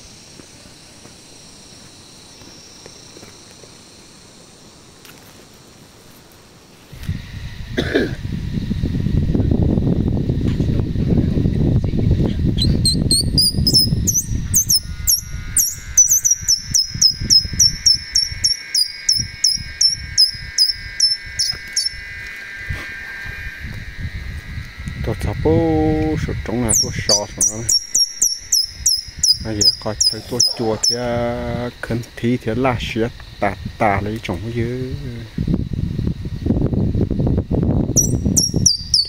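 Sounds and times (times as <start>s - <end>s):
high descending insect chirps: 0.0s - 39.0s
insects buzzing drone: 0.0s - 39.0s.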